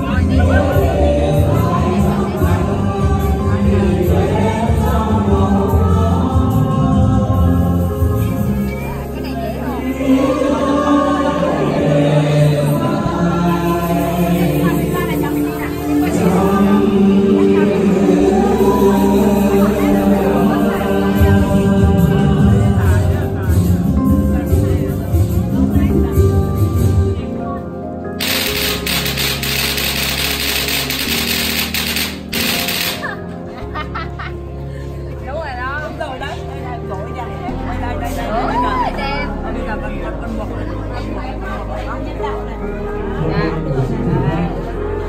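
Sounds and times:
group of voices singing: 0.0s - 23.2s, 28.2s - 33.1s
traditional music: 28.2s - 33.8s.

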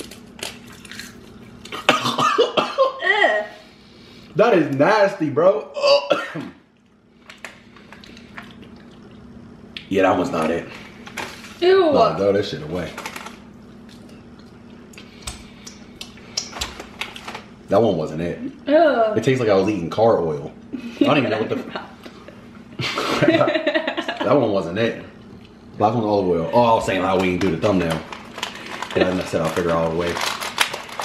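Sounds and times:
low steady hum: 0.0s - 31.0s
person coughing and gagging: 1.7s - 3.5s, 5.8s - 6.6s
wet mouth clicks and lip smacks: 13.8s - 16.5s.

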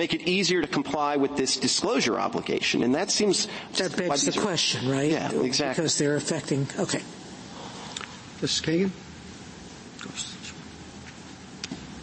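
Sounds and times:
background hiss: 0.0s - 12.0s
soft speech: 10.0s - 10.6s.

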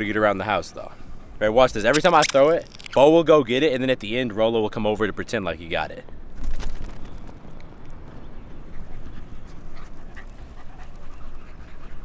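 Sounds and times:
dog panting: 8.5s - 12.0s.

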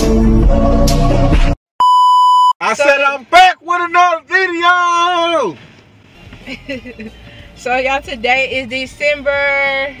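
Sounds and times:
background music: 0.0s - 1.6s, 6.1s - 10.0s
electronic bleep tone: 1.8s - 2.6s
woman speaking: 7.6s - 10.0s.

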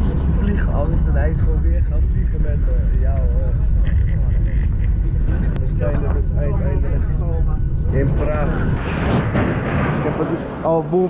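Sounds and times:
people talking: 0.0s - 4.5s, 5.6s - 8.8s, 10.0s - 11.0s
airliner cabin rumble: 0.0s - 10.7s.

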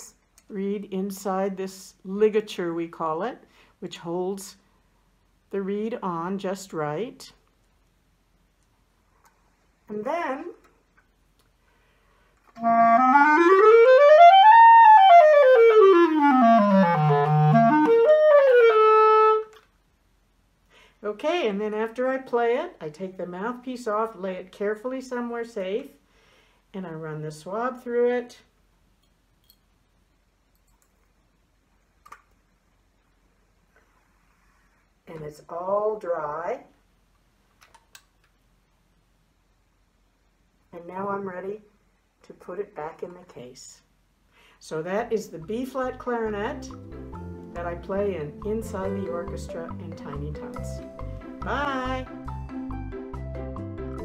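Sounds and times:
solo clarinet scale run: 12.6s - 19.5s.

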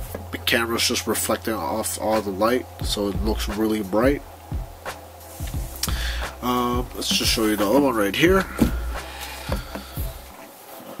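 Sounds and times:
shoe rubbing against hands: 5.2s - 10.3s
soft knocks of sneaker: 7.0s - 9.9s.

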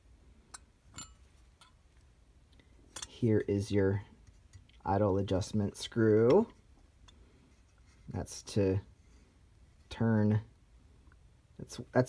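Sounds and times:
light clicks of handled metal part: 0.4s - 3.5s, 4.2s - 4.9s, 6.0s - 8.0s.

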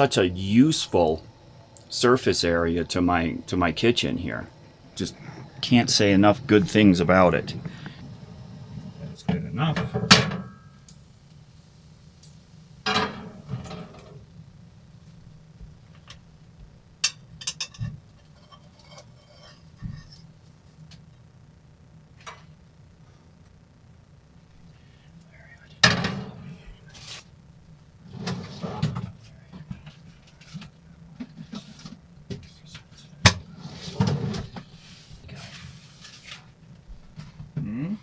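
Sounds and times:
steady low hum: 0.0s - 38.0s
frying pan and utensils clattering: 12.9s - 14.1s, 17.0s - 20.1s
sharp knocks and scrapes: 17.4s - 20.3s.

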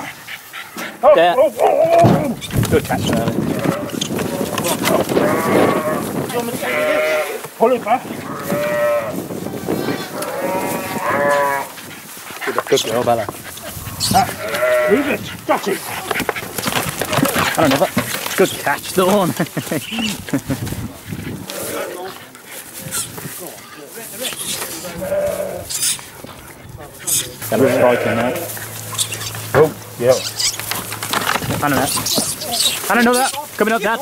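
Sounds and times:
sheep bleating: 3.2s - 7.5s, 8.2s - 11.8s, 13.9s - 15.3s, 21.4s - 22.2s, 24.6s - 26.0s, 27.4s - 29.6s.

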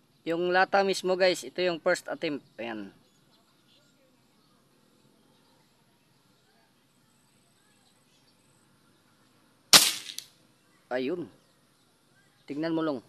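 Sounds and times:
air rifle shot: 9.8s - 10.3s.

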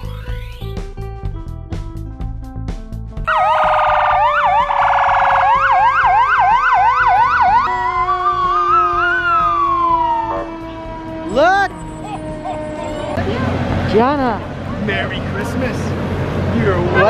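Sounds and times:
fire truck electronic siren: 3.3s - 13.2s.

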